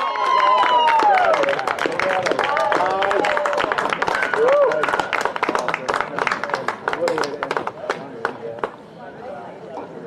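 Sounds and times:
spectators clapping: 0.0 - 8.8.

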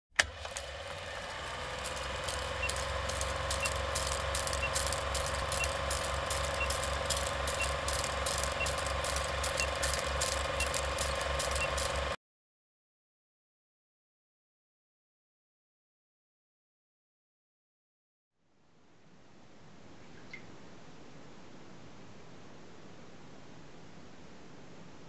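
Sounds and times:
film projector clattering: 0.1 - 12.2
click: 0.2 - 0.7, 1.7 - 12.2, 20.2 - 20.5
short high beeps: 2.2 - 12.2.

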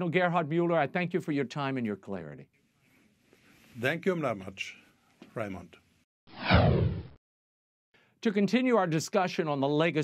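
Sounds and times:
whoosh sweeping downward: 6.3 - 7.2.

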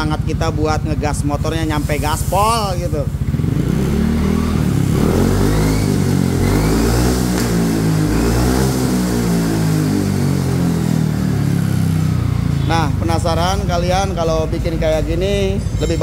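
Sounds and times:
scooter engine revving: 0.0 - 16.0.

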